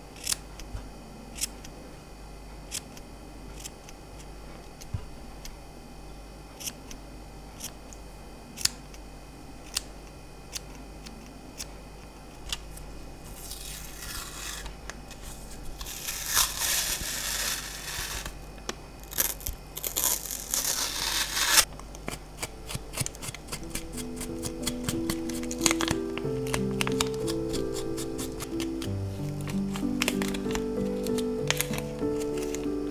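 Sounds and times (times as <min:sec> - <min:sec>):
scissors snipping yarn: 0:19.1 - 0:32.9
music: 0:23.3 - 0:32.9.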